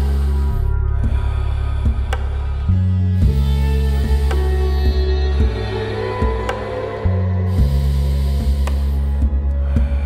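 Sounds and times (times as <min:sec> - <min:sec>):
meditative background music: 0:00.0 - 0:10.0
long airy breath: 0:07.3 - 0:10.0.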